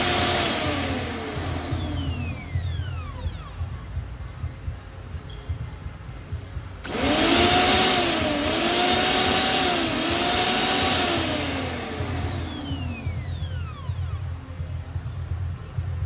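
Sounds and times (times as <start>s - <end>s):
mixer grinder motor whining: 0.0s - 3.7s, 6.9s - 14.3s.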